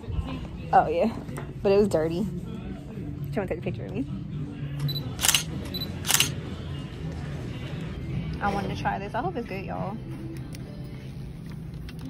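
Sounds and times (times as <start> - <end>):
camera shutter clicks: 4.9 - 6.4.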